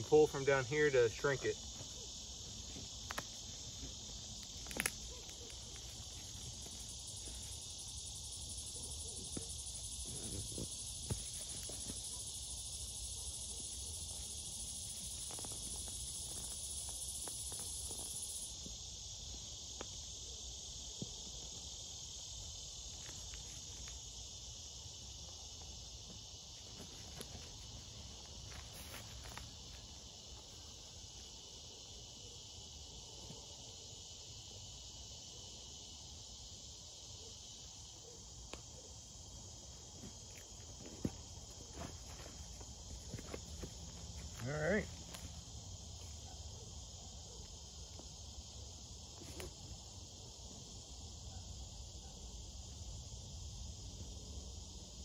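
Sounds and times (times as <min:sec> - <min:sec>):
chorus of insects: 0:00.0 - 0:55.0.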